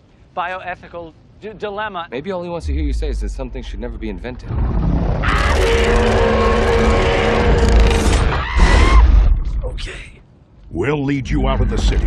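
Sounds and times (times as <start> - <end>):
deep rumble: 2.6 - 8.3
mechanical creature roar: 5.1 - 9.1.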